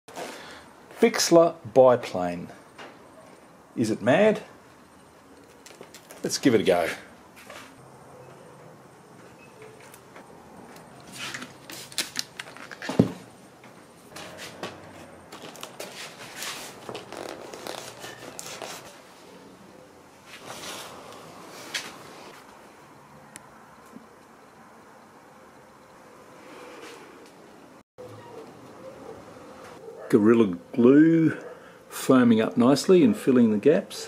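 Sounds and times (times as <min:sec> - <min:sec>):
rustles and clicks of handling: 0:04.7 - 0:07.8, 0:09.1 - 0:19.1.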